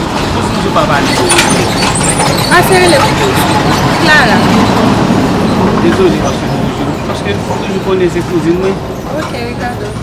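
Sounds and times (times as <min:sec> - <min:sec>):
loud rushing noise: 0:00.0 - 0:08.9.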